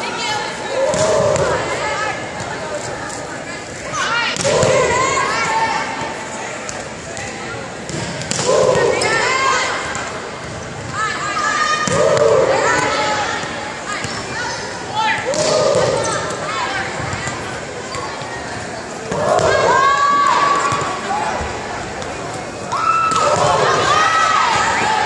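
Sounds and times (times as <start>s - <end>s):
volleyballs struck and bouncing: 0.9s - 1.8s, 6.0s - 9.0s, 11.8s - 14.2s, 15.2s - 16.4s, 23.0s - 23.9s
sneakers squeaking: 12.8s - 19.6s.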